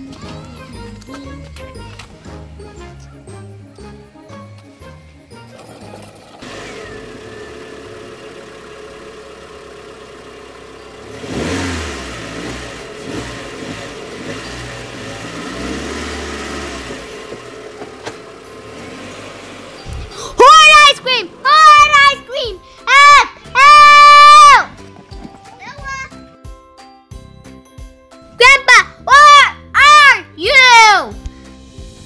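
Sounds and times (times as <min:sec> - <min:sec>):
toy car motor hum: 0:05.5 - 0:09.1.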